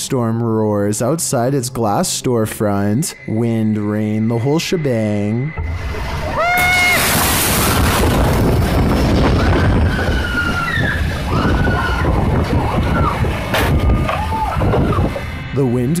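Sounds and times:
high rising scream: 0:03.1 - 0:15.6
storm wind and heavy rain: 0:05.6 - 0:15.4.

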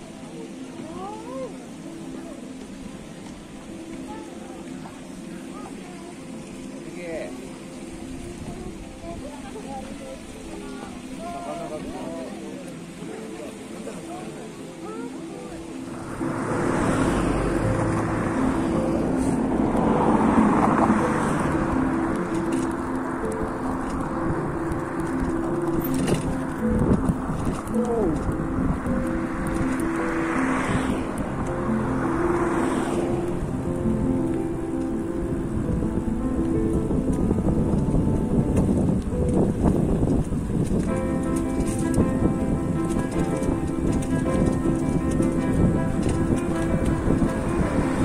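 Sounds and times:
background chatter of voices: 0:00.0 - 0:22.5
vehicle driving past: 0:15.8 - 0:37.2, 0:41.0 - 0:48.0.

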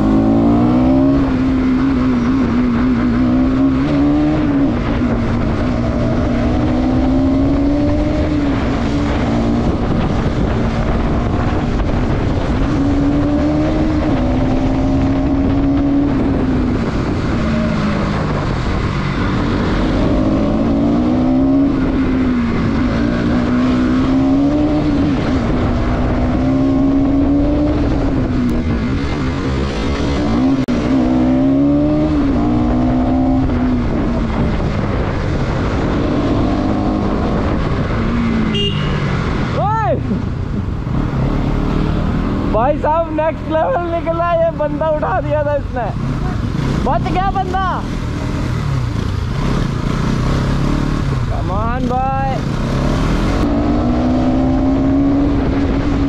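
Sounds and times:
motorcycle engine revving: 0:00.0 - 0:56.0
wind noise: 0:00.0 - 0:56.0.

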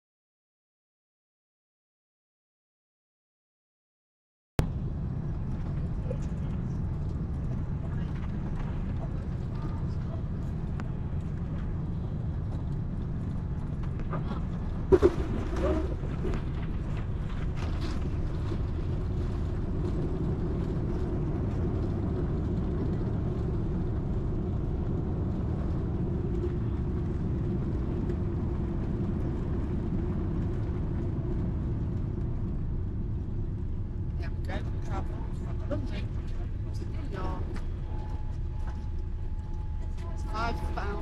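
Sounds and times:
airliner cabin drone: 0:04.6 - 0:41.0.

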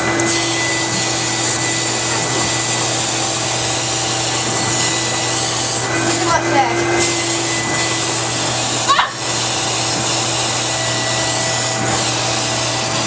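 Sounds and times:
vacuum cleaner running: 0:00.0 - 0:13.0.

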